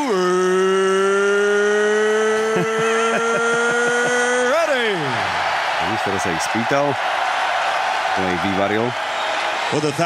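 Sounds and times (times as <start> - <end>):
arena crowd hubbub: 2.6 - 10.0.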